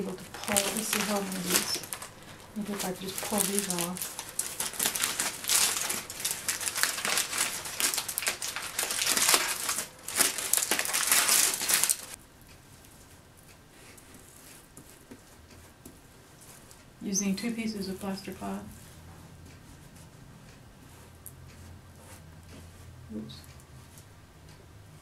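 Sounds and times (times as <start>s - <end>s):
foil and plastic crinkling: 0.0s - 12.2s.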